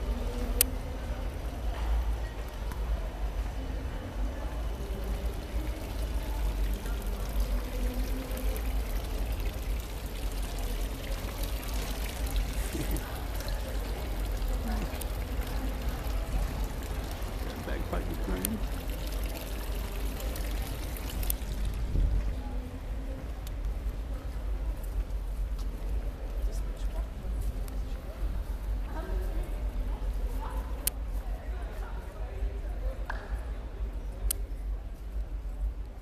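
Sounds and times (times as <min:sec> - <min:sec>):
murmur of voices: 0:00.0 - 0:36.0
fountain water splashing into basin: 0:03.9 - 0:22.6
wind rumble on microphone: 0:21.4 - 0:25.2.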